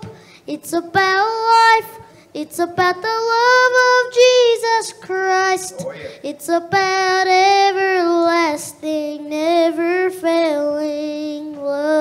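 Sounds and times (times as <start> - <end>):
boy singing into microphone: 0.0 - 12.0.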